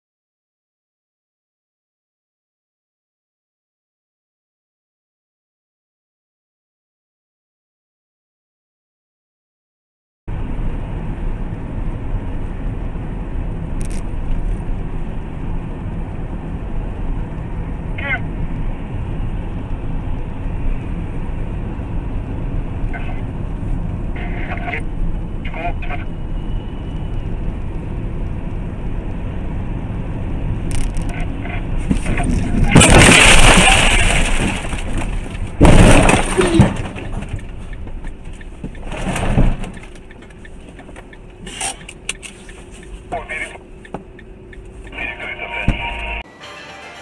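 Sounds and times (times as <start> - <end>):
car road and engine noise: 10.3 - 46.3
loud crash: 31.9 - 37.3.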